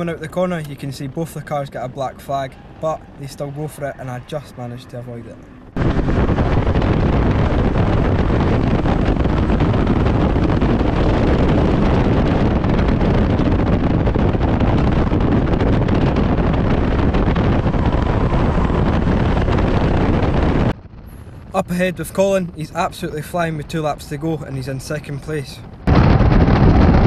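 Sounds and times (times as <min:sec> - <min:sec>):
race car engine and road noise: 0:00.0 - 0:25.9
wind buffeting the microphone: 0:05.4 - 0:27.0.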